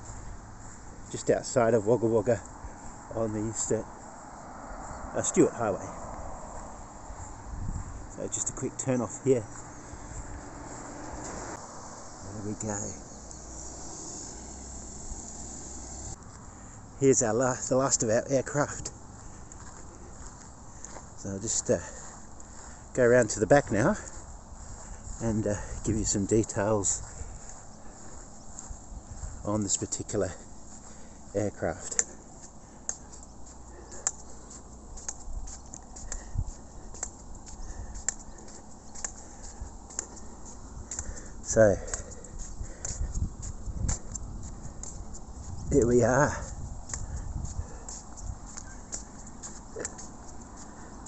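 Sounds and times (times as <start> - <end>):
footsteps on pavement: 0.0 - 51.0
wind rumble on microphone: 5.9 - 8.2, 24.0 - 27.7, 28.5 - 29.5, 39.0 - 49.5
insect chorus: 8.1 - 16.2
faint high ticks: 32.8 - 36.3, 36.9 - 41.2.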